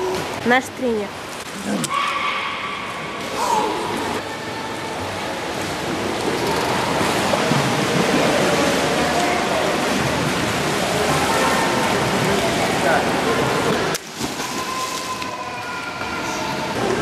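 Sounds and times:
pool water rushing: 0.0s - 17.0s.

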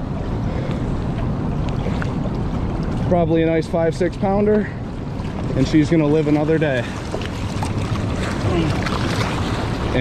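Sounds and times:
river water running: 0.0s - 10.0s.

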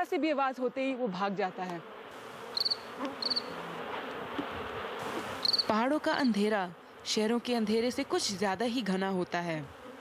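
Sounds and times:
steady background hiss: 0.0s - 10.0s
insect chirping: 2.2s - 3.6s, 5.0s - 7.0s.

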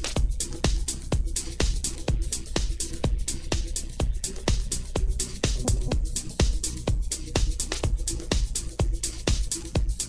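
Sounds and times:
kick drum: 0.0s - 10.0s
hi-hats ticking: 4.2s - 10.0s
electronic dance music: 5.6s - 7.0s.

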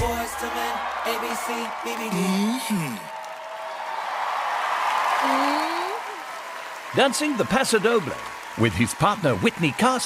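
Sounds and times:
audience applauding and cheering: 0.0s - 10.0s
person whooping: 5.2s - 6.2s.

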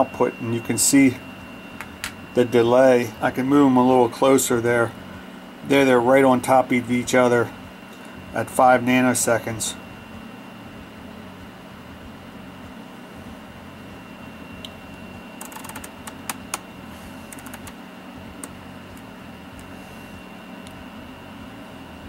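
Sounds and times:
steady low hum: 0.0s - 22.0s
thin high whine: 0.0s - 22.0s
oscilloscope control clicks: 14.6s - 14.8s, 15.4s - 16.7s, 17.3s - 17.8s.

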